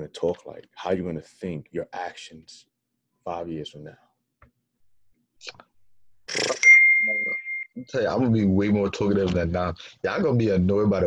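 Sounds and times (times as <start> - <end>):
high-pitched electronic beep: 6.4 - 7.9.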